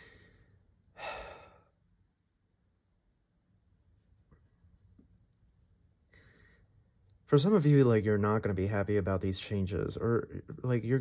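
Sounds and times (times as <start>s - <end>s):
person sighing: 1.0s - 1.8s.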